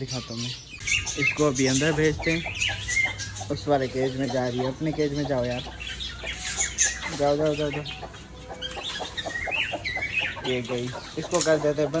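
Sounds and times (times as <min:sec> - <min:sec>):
high chirps: 0:00.0 - 0:11.9
chicken clucking: 0:00.1 - 0:12.0.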